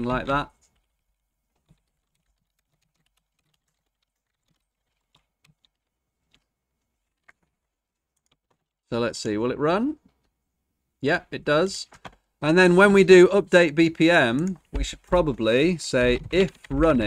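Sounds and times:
keystrokes on computer keyboard: 0.6s - 8.8s.

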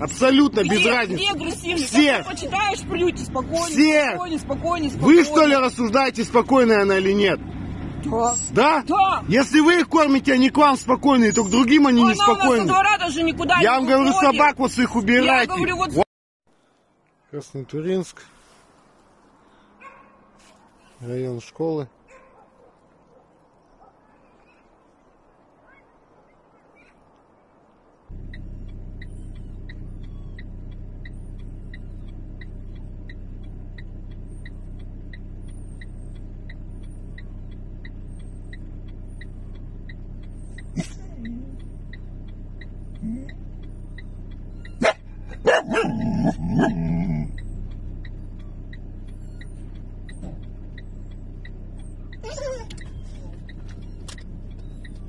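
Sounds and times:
low engine hum: 0.0s - 55.0s
light regular ticking: 27.0s - 55.0s
faint dog whimpers: 29.1s - 30.5s, 40.4s - 41.6s, 43.0s - 43.4s, 51.9s - 55.0s.

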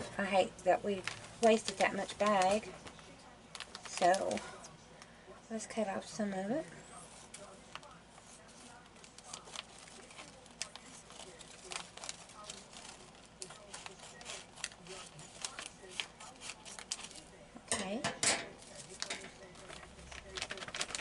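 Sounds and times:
scissors snipping plastic bag: 0.9s - 2.7s, 3.5s - 4.4s, 9.1s - 17.3s, 18.6s - 21.0s.

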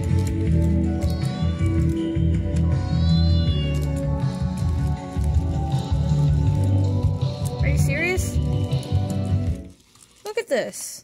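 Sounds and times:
music with steady beat: 0.0s - 9.7s.

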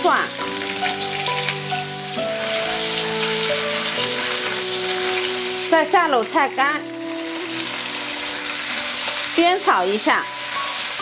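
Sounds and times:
food sizzling in hot oil: 0.0s - 11.0s
soft background music: 0.0s - 11.0s.

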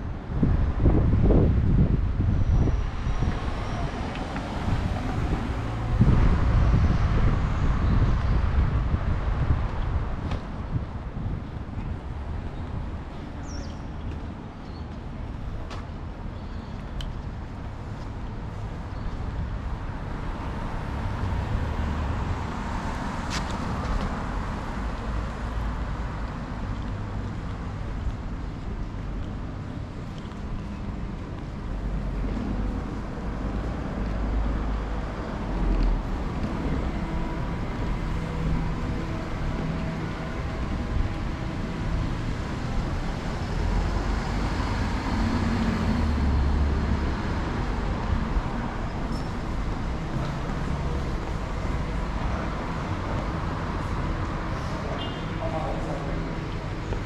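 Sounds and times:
cars passing: 0.0s - 57.0s.

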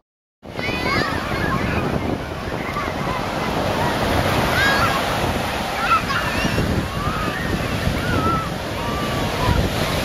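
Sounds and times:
ocean surf breaking: 0.4s - 10.0s.

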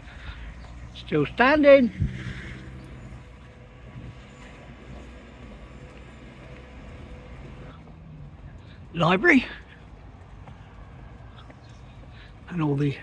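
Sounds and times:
road traffic hum: 0.0s - 13.0s.

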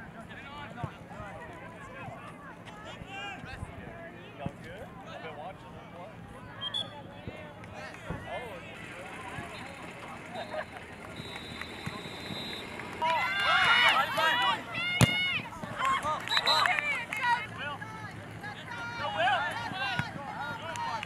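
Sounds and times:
people shouting: 13.0s - 18.0s
ball being kicked: 15.0s - 15.3s.

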